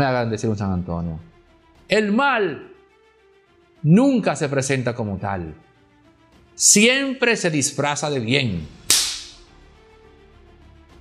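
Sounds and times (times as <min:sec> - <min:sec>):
faint background music: 0:00.0 - 0:11.0
whip-like swish: 0:08.9 - 0:09.4.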